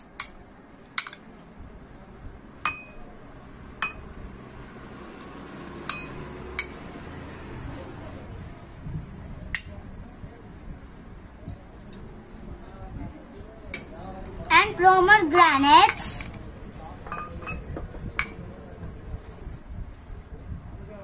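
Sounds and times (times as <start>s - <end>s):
steel spoon clinking against glass: 2.7s - 3.1s, 3.8s - 4.1s, 5.8s - 7.1s.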